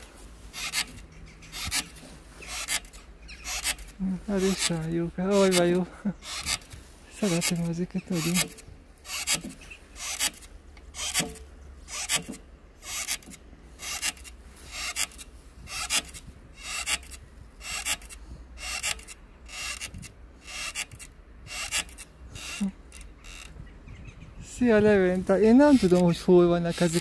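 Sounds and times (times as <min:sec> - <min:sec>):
exercise machine rasping swish: 0:00.0 - 0:23.5.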